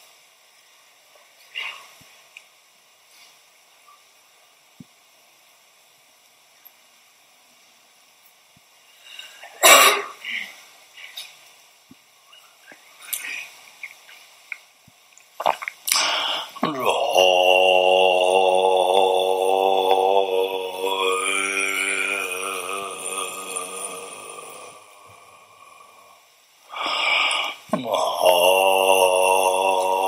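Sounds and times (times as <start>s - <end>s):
person breathing: 15.9s - 16.8s, 20.4s - 30.0s
low chanted prayer: 16.6s - 24.9s.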